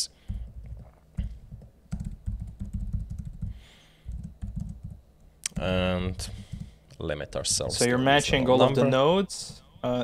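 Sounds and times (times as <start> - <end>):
typing on computer keyboard: 0.4 - 5.0.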